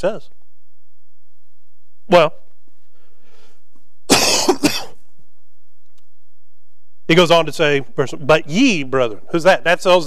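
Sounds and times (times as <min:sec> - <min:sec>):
man coughing: 0:04.1 - 0:05.0.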